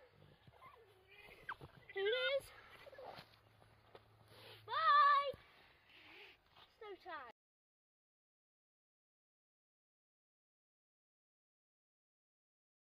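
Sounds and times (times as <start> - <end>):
child shouting: 4.7 - 5.4.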